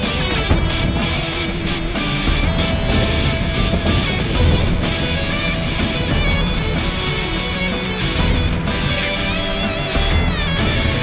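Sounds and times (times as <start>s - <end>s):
guitar-led background music: 0.0s - 11.0s.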